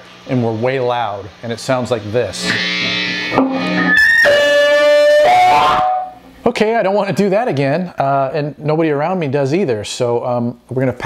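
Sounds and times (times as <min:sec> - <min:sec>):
piercing feedback squeal: 0:02.3 - 0:06.3
electric guitar held note: 0:02.3 - 0:06.4.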